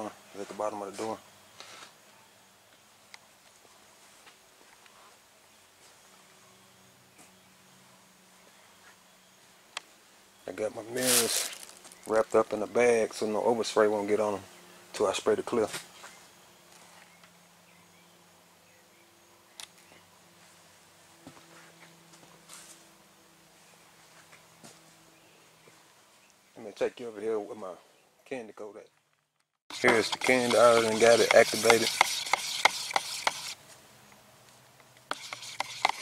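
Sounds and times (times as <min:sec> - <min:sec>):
stir stick scraping in a cup: 0:29.7 - 0:33.6, 0:35.1 - 0:36.0.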